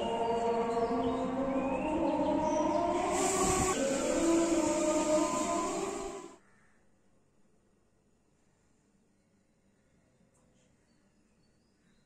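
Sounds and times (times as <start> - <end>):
chanting voices over loudspeakers: 0.0 - 6.4.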